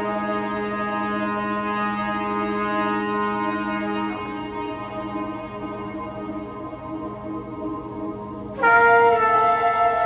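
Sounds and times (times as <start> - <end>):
trumpet long notes: 0.0 - 6.8, 8.5 - 10.0.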